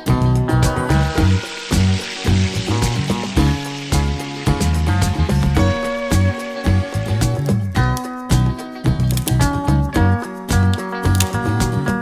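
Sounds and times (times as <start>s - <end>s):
background music: 0.0s - 12.0s
noodles sizzling in hot pan: 0.6s - 7.6s.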